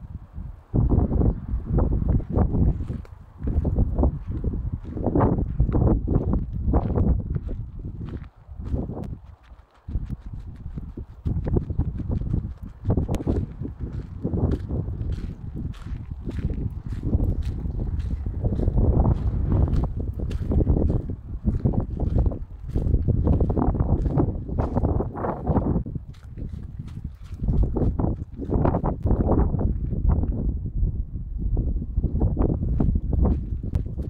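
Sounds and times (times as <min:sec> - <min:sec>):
wind buffeting microphone: 0:00.0 - 0:34.0
footsteps on gravel: 0:02.1 - 0:30.0, 0:32.7 - 0:34.0.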